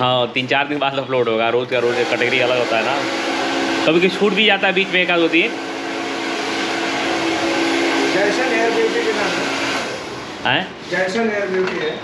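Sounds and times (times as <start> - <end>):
hair dryer blowing: 1.8 - 10.4.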